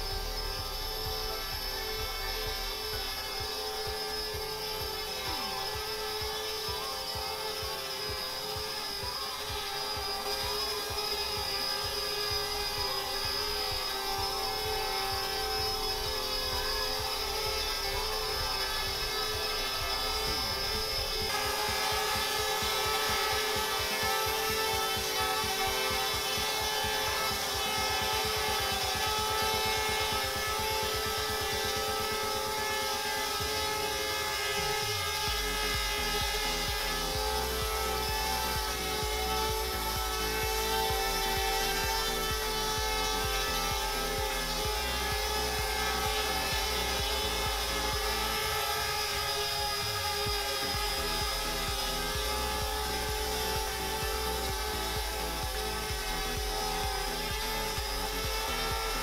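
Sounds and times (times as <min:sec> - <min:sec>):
drone propellers whining: 0:00.0 - 0:59.0.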